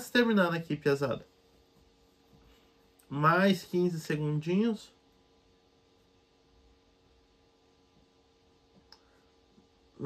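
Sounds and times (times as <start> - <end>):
faint steady hum: 0.0 - 10.0
faint click: 8.8 - 9.1.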